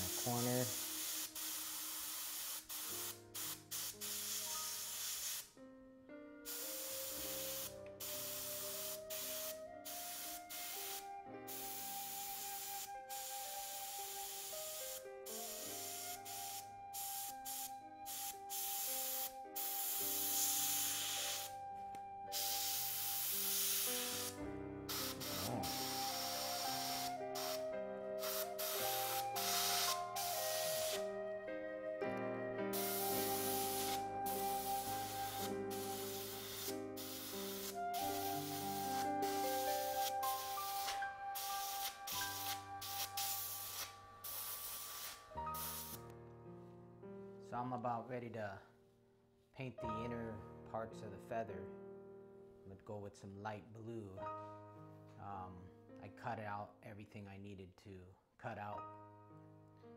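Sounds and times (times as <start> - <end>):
airbrush hissing: 0.0 - 5.6, 6.4 - 21.6, 22.3 - 31.1, 32.7 - 46.1
soft background music: 0.0 - 57.6, 58.4 - 59.9.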